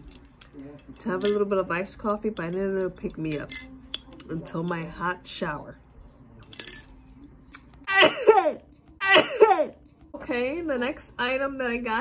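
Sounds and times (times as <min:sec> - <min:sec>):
woman coughing: 0:07.9 - 0:09.8.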